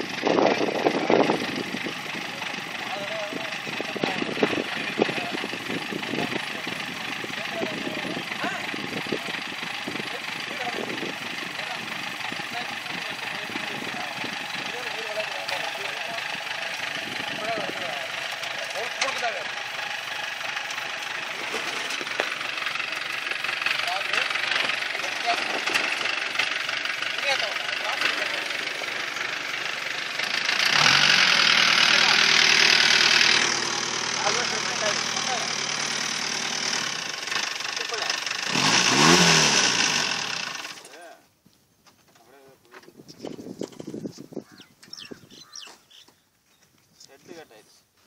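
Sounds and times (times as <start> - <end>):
car engine driving over dirt: 0.0 - 41.1, 41.8 - 46.8.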